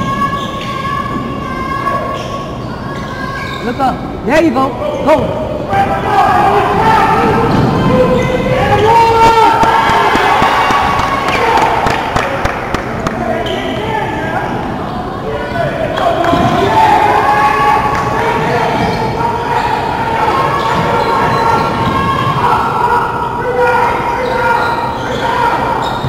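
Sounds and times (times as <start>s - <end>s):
shouting and chatter: 0.0s - 26.0s.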